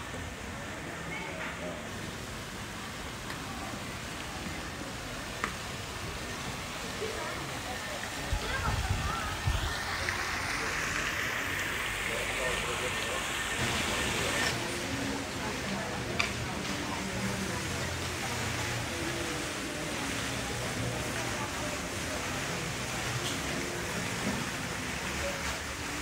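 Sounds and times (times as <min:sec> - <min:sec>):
faint voices of passers-by: 0:00.0 - 0:26.0
steady hiss: 0:00.0 - 0:26.0.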